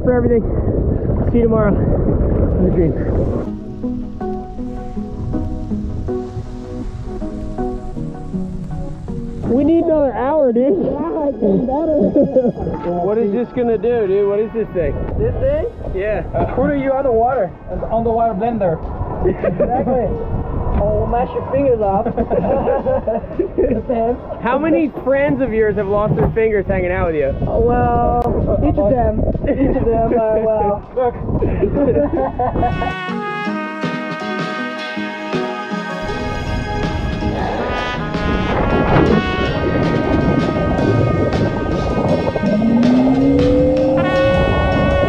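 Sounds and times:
background music: 3.3s - 17.7s, 32.7s - 45.0s
men talking: 9.5s - 33.0s
men chuckling: 10.7s - 12.9s, 19.2s - 20.2s, 21.9s - 24.2s, 31.4s - 33.0s, 42.2s - 43.9s.

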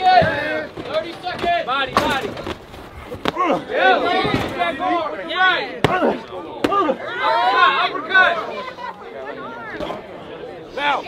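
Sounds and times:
crowd shouting: 3.2s - 11.0s.

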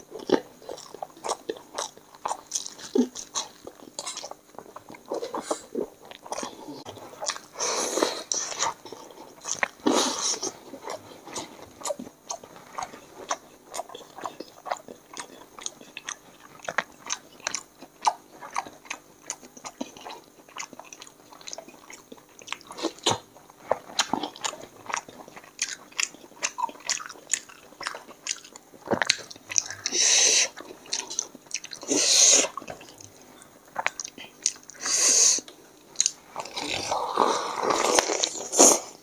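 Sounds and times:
person chewing and lip smacking: 0.1s - 38.9s.

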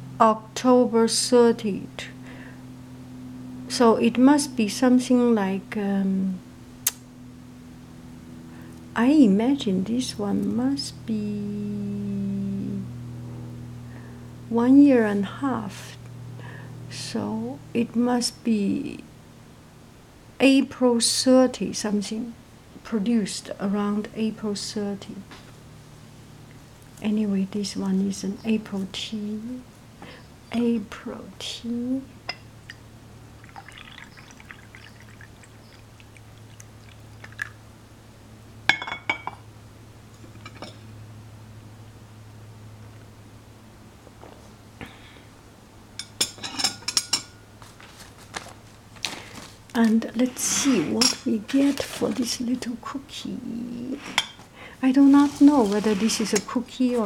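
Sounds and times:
low electrical hum: 0.0s - 57.0s
tea pouring into cup: 33.4s - 37.6s
ceramic clink: 38.7s - 39.4s.

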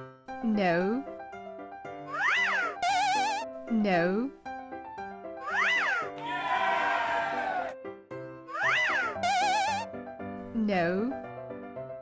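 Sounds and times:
children's background music: 0.0s - 12.0s
cartoon pitch glide effect: 2.2s - 3.5s, 8.6s - 9.9s.

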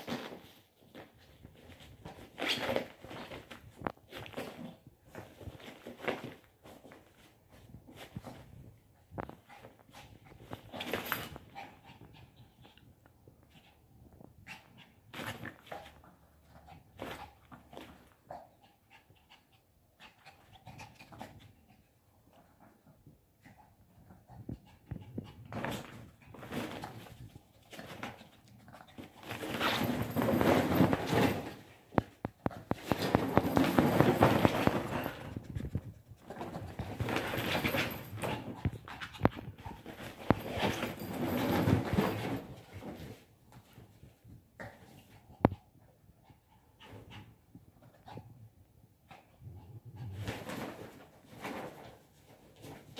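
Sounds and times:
loud fabric rustling and scraping: 29.0s - 31.9s, 32.7s - 35.7s.

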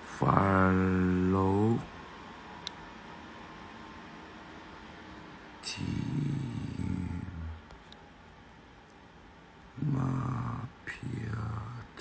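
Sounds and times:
man humming a low note: 5.6s - 7.6s, 9.8s - 12.0s.

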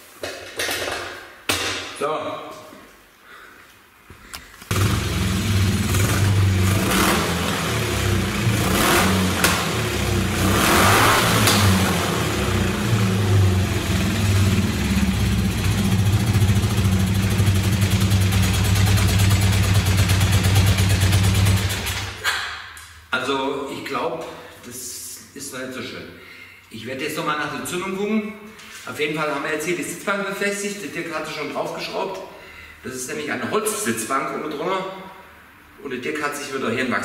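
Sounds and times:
motorcycle engine running: 4.7s - 22.1s.

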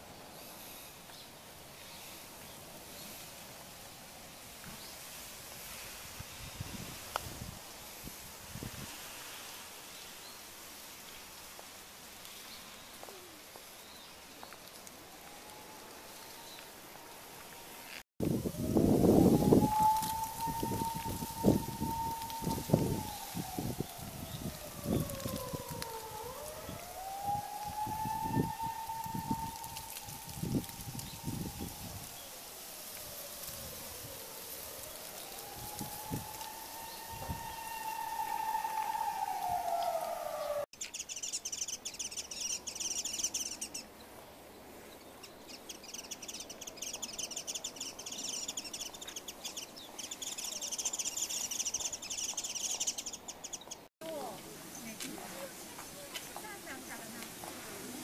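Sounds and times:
siren wailing: 15.0s - 40.7s.

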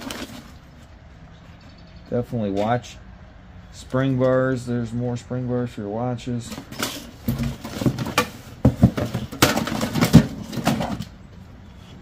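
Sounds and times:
metal parts rattling in cardboard box: 0.0s - 0.6s, 6.5s - 11.2s.

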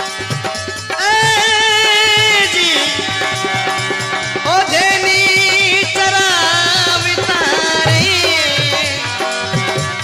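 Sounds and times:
hand drum beat: 0.0s - 10.0s.

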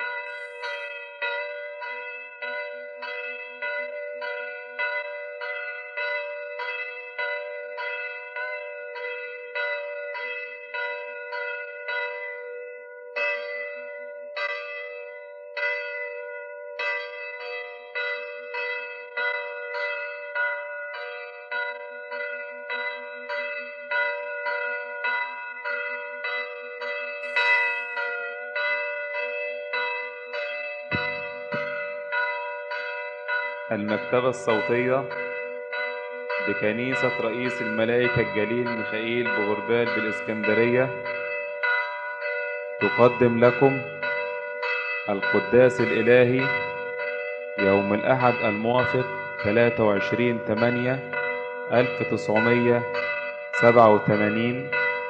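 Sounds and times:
church bells ringing: 0.0s - 55.0s.

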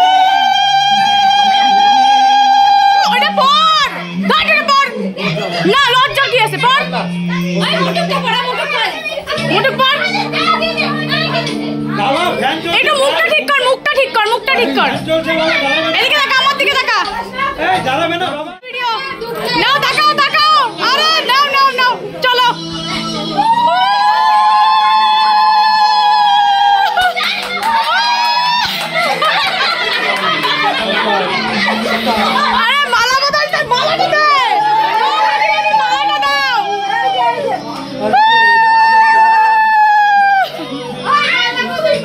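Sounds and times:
people shouting excitedly: 0.0s - 4.8s, 19.3s - 42.0s.

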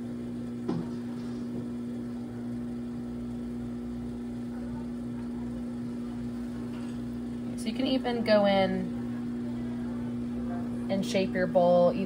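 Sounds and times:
pottery wheel motor humming: 0.0s - 12.0s.

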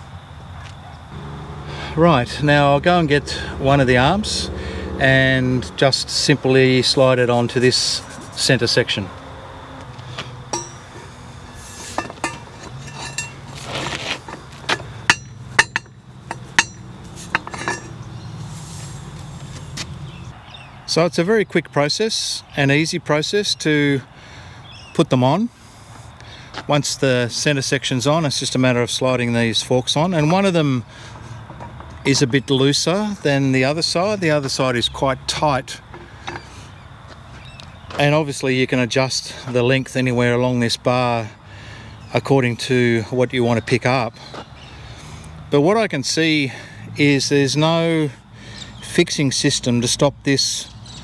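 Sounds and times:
faint outdoor background noise: 0.0s - 51.0s
steady low hum: 1.1s - 9.0s, 10.4s - 20.4s
metal scrape: 7.6s - 8.6s, 10.5s - 19.9s
metal clinks and knocks: 10.5s - 18.2s.

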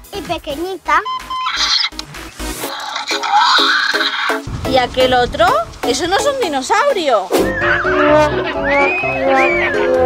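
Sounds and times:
background music: 0.0s - 10.0s
toy electronic screech and chirps: 1.3s - 1.9s.

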